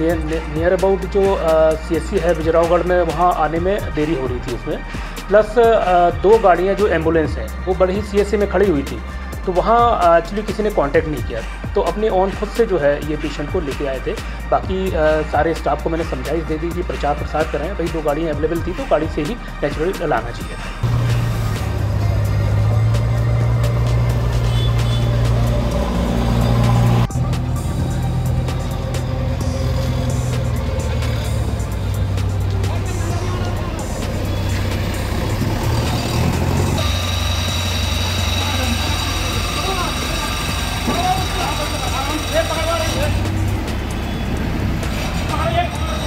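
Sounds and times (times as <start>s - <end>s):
voices: 0.0s - 25.6s, 26.7s - 46.0s
street traffic: 0.0s - 46.0s
backhoe loader engine: 20.8s - 46.0s.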